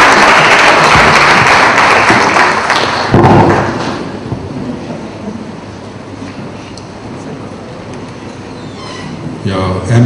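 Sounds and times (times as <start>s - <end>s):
audience applauding: 0.0s - 3.8s.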